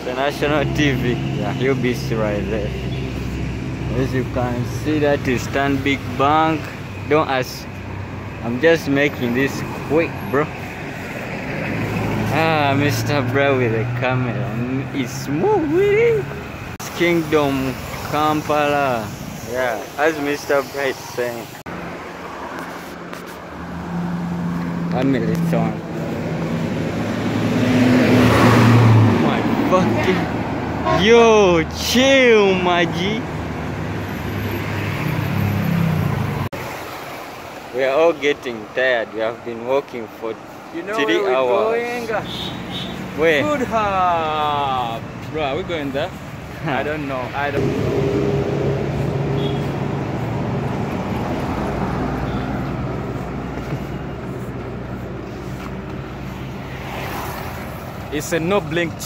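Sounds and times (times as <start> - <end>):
bus passing by: 0.0 - 59.0
road traffic rush: 0.0 - 59.0
vehicle engine hum: 0.0 - 59.0.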